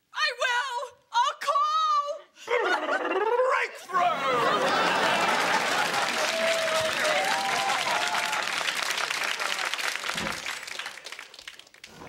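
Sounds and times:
audience applause: 4.3 - 12.0.

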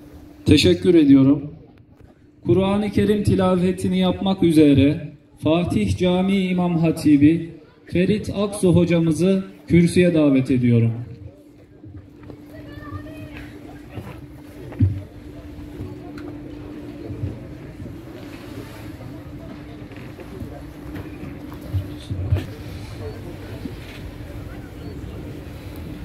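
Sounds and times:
steady low hum: 0.0 - 26.0
faint murmuring voices: 7.2 - 26.0.

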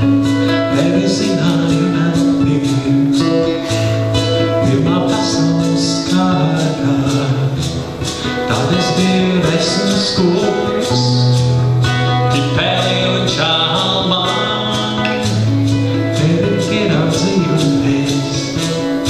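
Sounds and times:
man singing slow song: 0.0 - 11.6, 12.3 - 19.0
acoustic classical guitar: 0.0 - 19.0.

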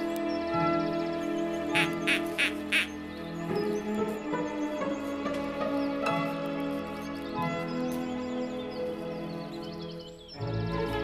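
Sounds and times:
soundtrack music with held tones: 0.0 - 11.0.

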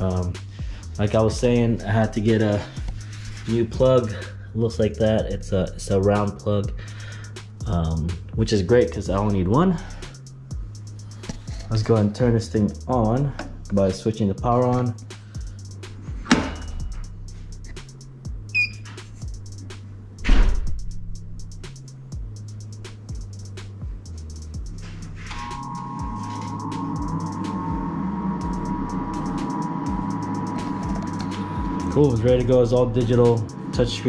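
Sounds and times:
background music with a beat: 0.0 - 34.0
machine hum with a whine: 23.0 - 34.0.

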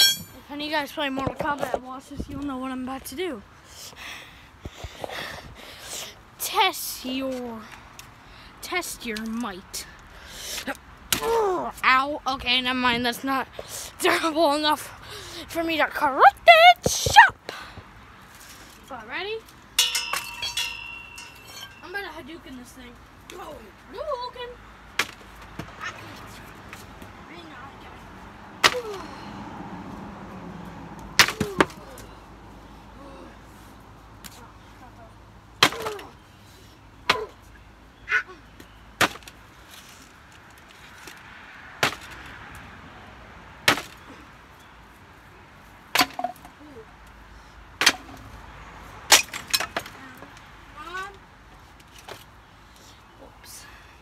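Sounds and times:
hard ringing clinking strike: 0.0 - 0.4, 19.8 - 21.8.

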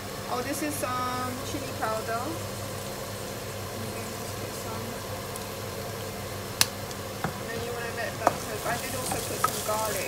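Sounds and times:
onions frying in a pan: 0.0 - 10.0
steady low hum: 0.0 - 10.0.

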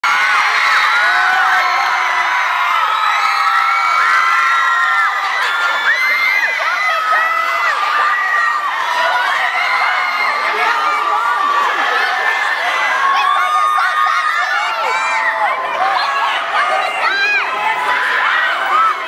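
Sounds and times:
audience cheering and screaming: 0.0 - 19.0.

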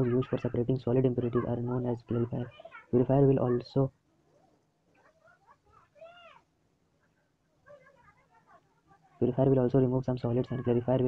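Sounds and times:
faint scattered sounds: 0.0 - 11.0.

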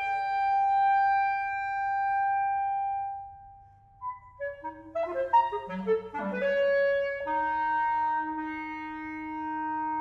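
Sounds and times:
chamber music with clarinet: 0.0 - 3.3, 4.0 - 10.0.

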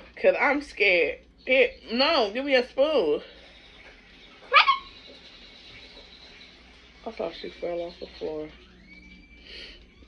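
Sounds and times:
high yelp rising in pitch: 4.4 - 5.0.

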